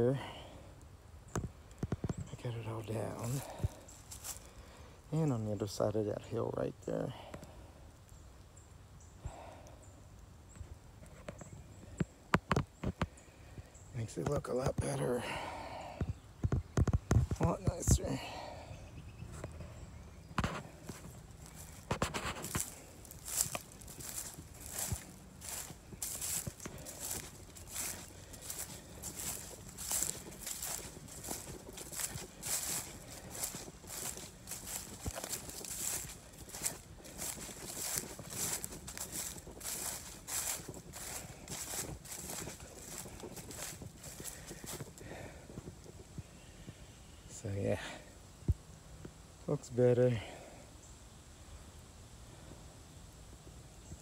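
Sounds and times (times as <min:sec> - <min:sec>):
footsteps in dry leaves: 0:02.3 - 0:06.0, 0:20.4 - 0:46.0.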